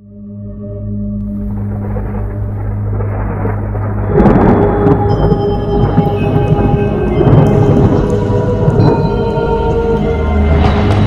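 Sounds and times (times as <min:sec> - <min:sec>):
steady background music: 0:00.0 - 0:11.0
rain: 0:01.2 - 0:11.0
thunder rumble: 0:01.2 - 0:11.0.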